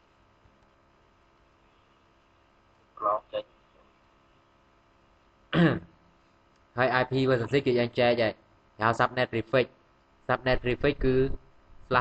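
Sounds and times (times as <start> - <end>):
person speaking: 3.0 - 3.8, 6.7 - 12.0
person clearing throat: 5.5 - 6.0.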